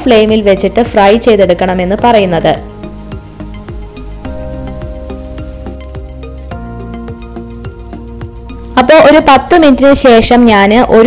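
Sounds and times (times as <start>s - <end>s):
background music of held chords: 0.0s - 11.0s.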